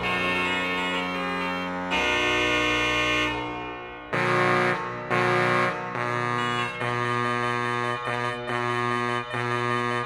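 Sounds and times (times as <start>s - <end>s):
electronic organ chords: 0.0s - 10.0s.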